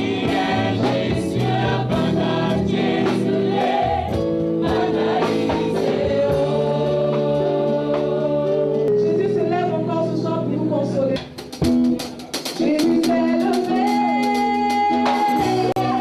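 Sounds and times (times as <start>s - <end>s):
women's choir singing gospel: 0.0s - 9.0s, 13.7s - 16.0s.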